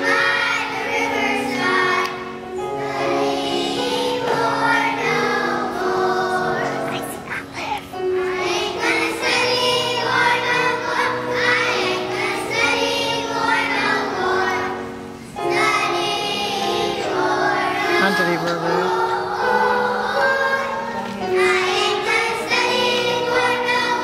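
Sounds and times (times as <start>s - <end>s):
children's choir singing: 0.0s - 24.0s
upright piano accompaniment: 0.0s - 24.0s.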